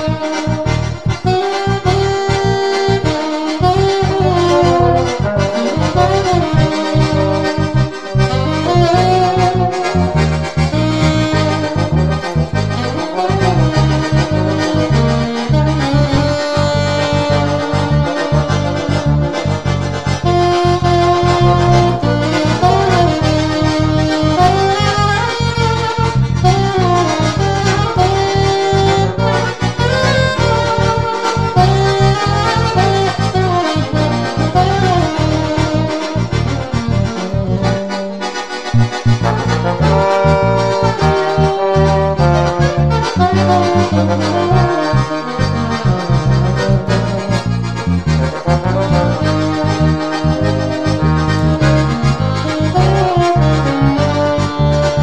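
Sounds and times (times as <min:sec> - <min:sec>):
accordion: 0:00.0 - 0:55.0
pulsing bass line: 0:00.0 - 0:55.0
saxophone: 0:00.0 - 0:55.0
trombone: 0:00.0 - 0:55.0.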